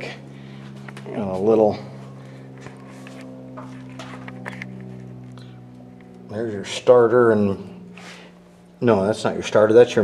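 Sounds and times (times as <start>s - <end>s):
low hum of held tones: 0.0s - 10.0s.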